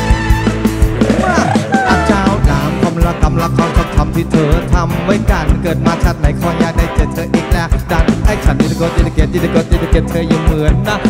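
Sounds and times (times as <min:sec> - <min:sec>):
drum kit steady beat: 0:00.0 - 0:11.0
live band music: 0:00.0 - 0:11.0.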